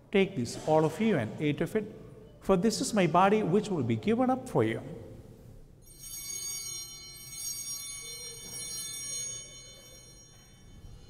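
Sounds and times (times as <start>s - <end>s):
altar bells ringing: 5.8s - 11.0s.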